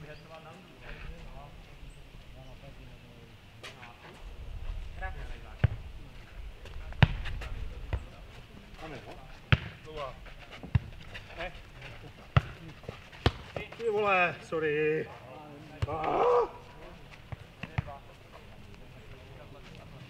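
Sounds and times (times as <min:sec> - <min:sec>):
ball kicked and bouncing on dirt: 0:05.4 - 0:05.9, 0:06.6 - 0:14.3, 0:15.7 - 0:16.1, 0:16.7 - 0:18.1
players' short calls: 0:15.9 - 0:16.8.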